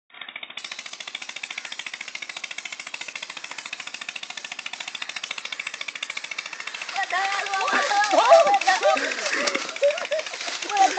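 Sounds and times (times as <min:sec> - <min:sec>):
fast even rattle: 0:00.1 - 0:10.9
voices: 0:06.7 - 0:10.9.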